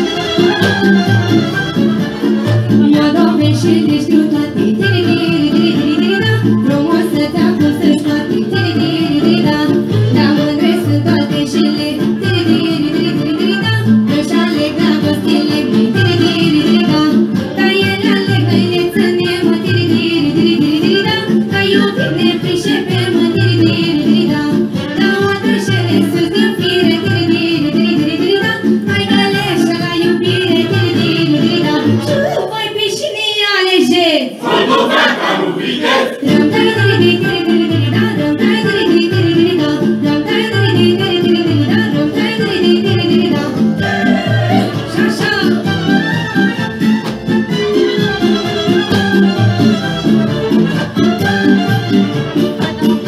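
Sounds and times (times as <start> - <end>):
amplified instrumental accompaniment: 0.0 - 32.3, 34.5 - 53.0
girl singing into microphone: 2.8 - 34.2, 36.2 - 45.7
girl singing through microphone: 36.2 - 45.6.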